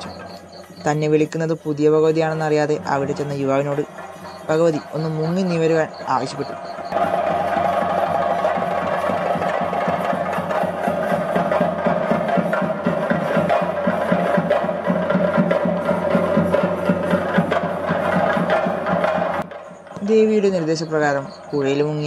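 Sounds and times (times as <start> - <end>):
steady high tone: 0.0 - 10.1
fast drumming: 0.0 - 22.0.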